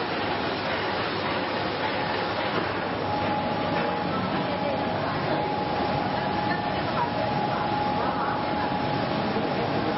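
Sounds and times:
printing press clattering: 0:00.0 - 0:09.9.

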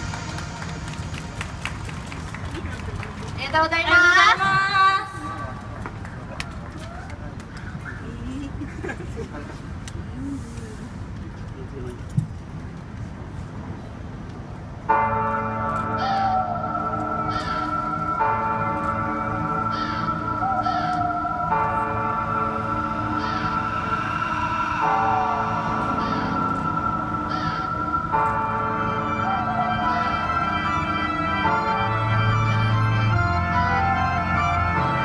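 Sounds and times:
pop song over outdoor speakers: 0:15.8 - 0:35.0.

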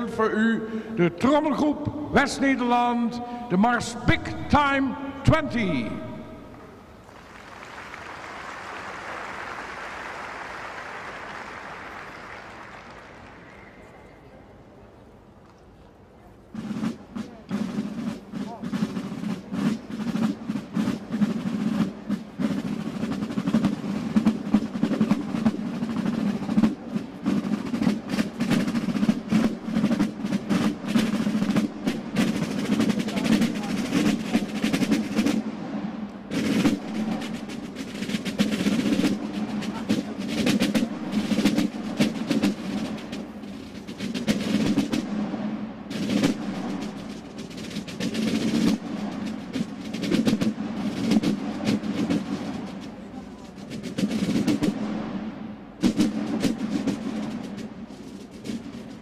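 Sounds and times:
side drums playing a march: 0:00.0 - 0:13.9, 0:16.5 - 0:59.0.

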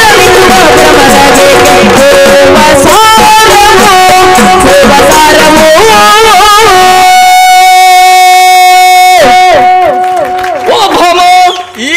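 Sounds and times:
person singing a long held note: 0:00.0 - 0:10.0.

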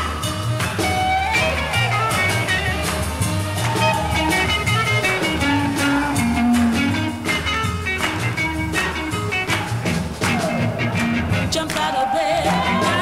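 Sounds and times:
drums steady beat: 0:00.0 - 0:13.0
soul band playing live: 0:00.0 - 0:13.0.

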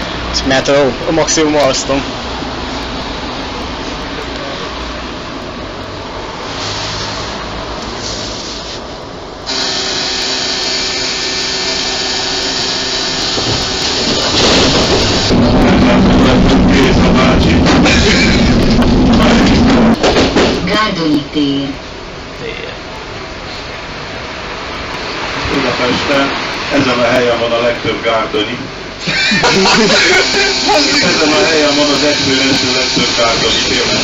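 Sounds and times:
tram running: 0:00.0 - 0:34.0.

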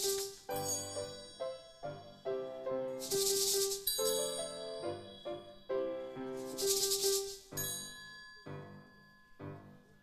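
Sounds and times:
shaker rattling: 0:00.0 - 0:00.8, 0:03.0 - 0:04.4, 0:06.4 - 0:07.6
piano melody: 0:00.0 - 0:10.0.

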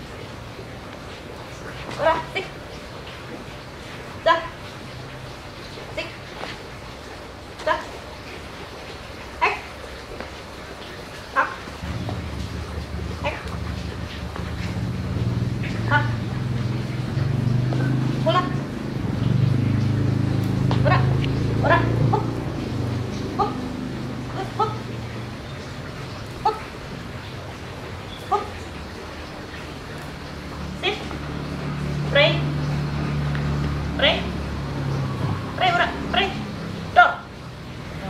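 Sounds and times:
low motor hum: 0:09.9 - 0:38.0.

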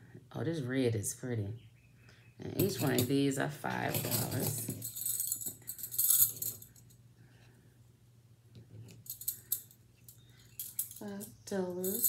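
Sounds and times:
metal bangles clinking: 0:02.6 - 0:07.0, 0:08.8 - 0:12.0.

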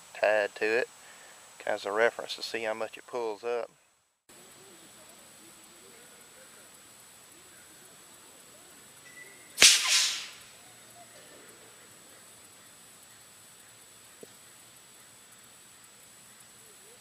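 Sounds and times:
air cannon firing pop: 0:09.6 - 0:10.4
rush of escaping air: 0:09.6 - 0:10.5.

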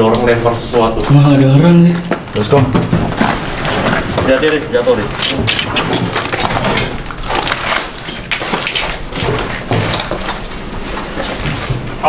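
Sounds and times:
cracks snaps and scrapes: 0:02.0 - 0:12.0.

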